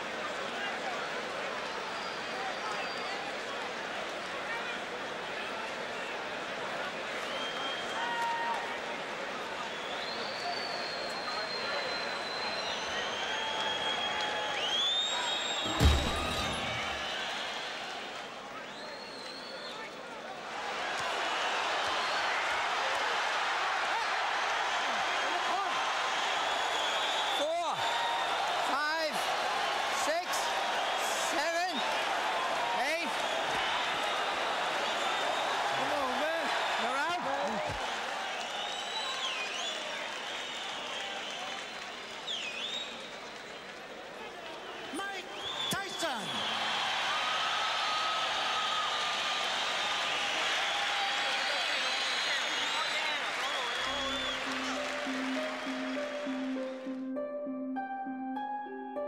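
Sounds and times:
crowd cheering and shouting: 12.9 - 18.5, 20.0 - 38.6, 44.4 - 57.0.

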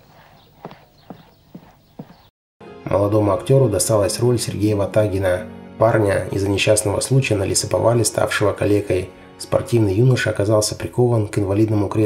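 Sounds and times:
footsteps on wooden floor: 0.0 - 2.3.

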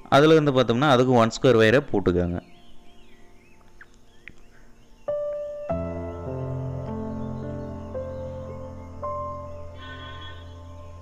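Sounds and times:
faint bird calls: 2.4 - 11.0.

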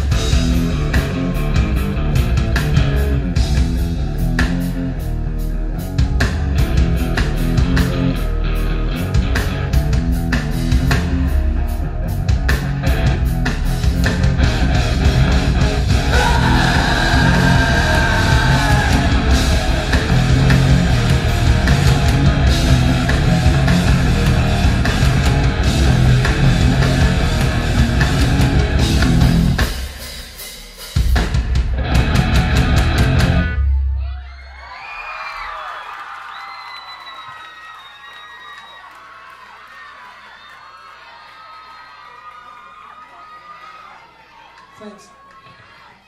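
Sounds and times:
live rock band: 0.0 - 33.8
audience cheering and whistling: 16.1 - 20.0, 34.0 - 46.0.

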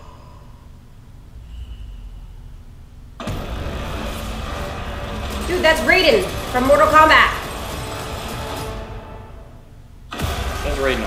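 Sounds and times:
loud rumbling noise: 0.0 - 11.0.

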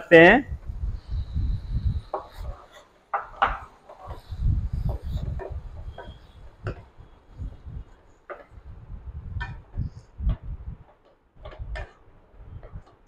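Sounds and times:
wooden spatula stirring in pan: 2.0 - 8.6.

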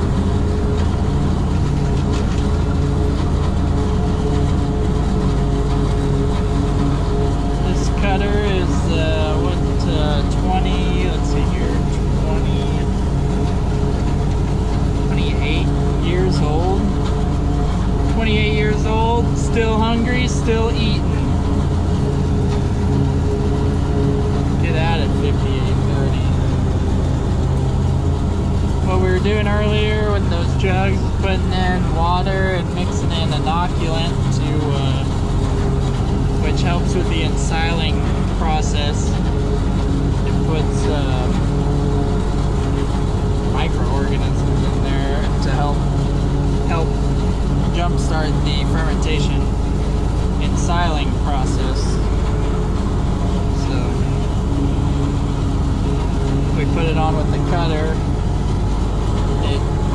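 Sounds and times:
diesel engines droning: 0.0 - 59.9
wavering voice-like sounds: 7.6 - 12.9, 15.1 - 16.9, 18.1 - 21.3, 24.6 - 26.4, 28.8 - 35.2, 36.4 - 39.2, 40.3 - 41.4, 43.6 - 45.8, 46.7 - 47.0, 47.7 - 49.4, 50.4 - 52.0, 53.6 - 54.2, 56.6 - 58.0.

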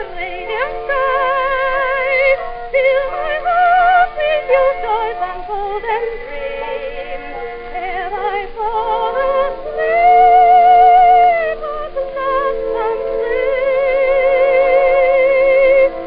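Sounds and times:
instrumental accompaniment: 0.0 - 16.0
soprano singing with vibrato: 0.0 - 16.0.

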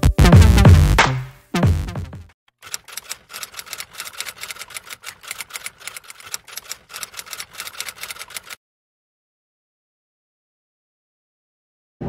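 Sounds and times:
intro music: 0.0 - 2.2
typewriter keystroke clicks: 2.6 - 8.6.

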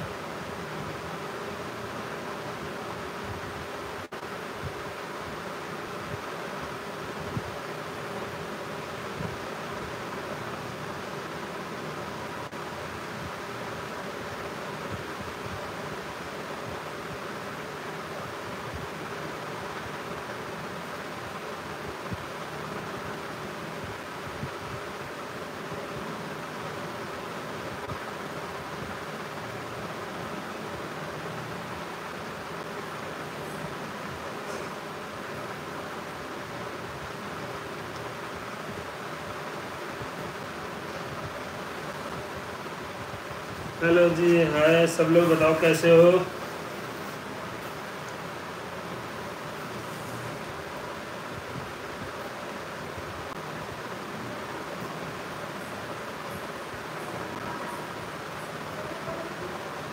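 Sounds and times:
room hiss: 0.0 - 59.9.

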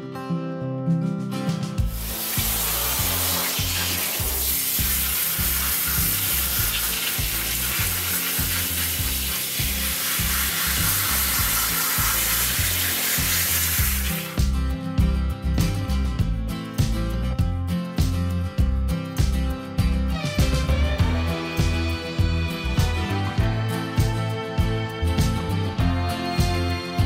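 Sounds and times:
background music with bass: 0.8 - 27.0
hose spraying water: 1.9 - 14.5.

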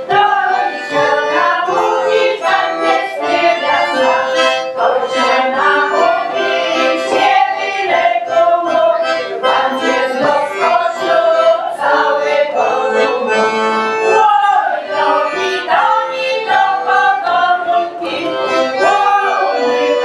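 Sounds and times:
accordion playing folk tune: 0.0 - 20.0.

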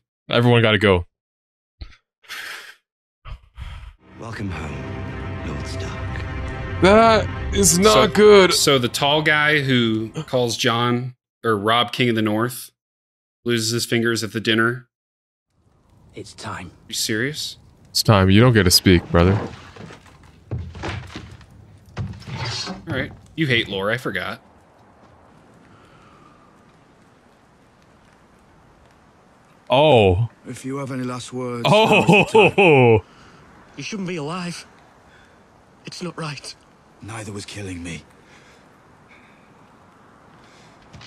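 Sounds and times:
dull thump: 19.4 - 23.2
person sighing: 32.3 - 33.2.

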